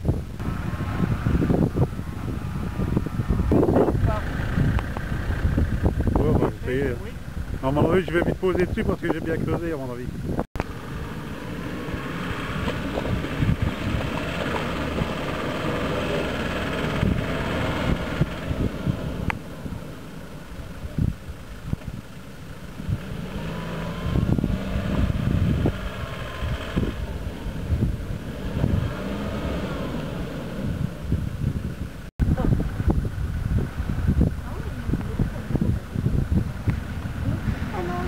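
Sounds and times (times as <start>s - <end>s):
car engine labouring through mud: 0.4s - 8.2s, 10.6s - 38.0s.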